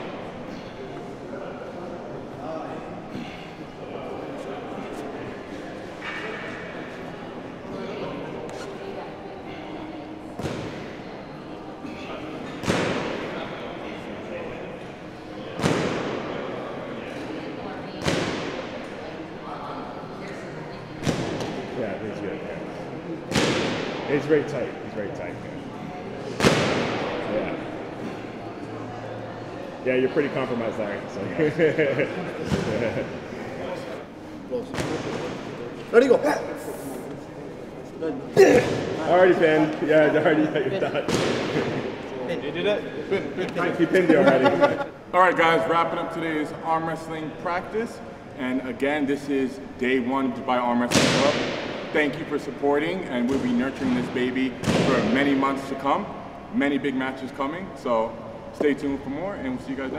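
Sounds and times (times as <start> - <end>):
murmur of voices: 0.0 - 59.9
men chattering: 35.8 - 46.2.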